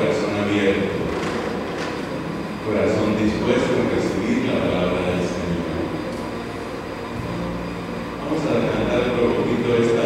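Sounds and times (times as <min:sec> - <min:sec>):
man speaking over pa system: 0:00.0 - 0:01.5, 0:02.6 - 0:06.0, 0:08.2 - 0:10.0
steady low drone: 0:00.0 - 0:10.0.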